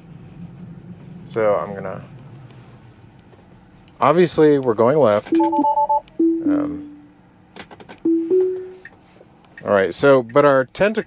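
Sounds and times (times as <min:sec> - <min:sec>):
two-note alert chime: 0:05.4 - 0:07.1, 0:08.1 - 0:08.8.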